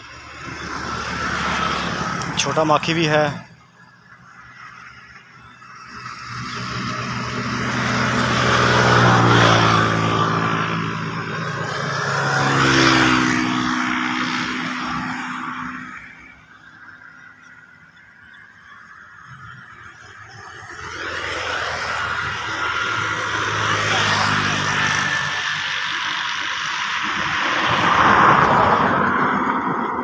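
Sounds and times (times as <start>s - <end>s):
vehicles driving past: 0.0s - 30.0s.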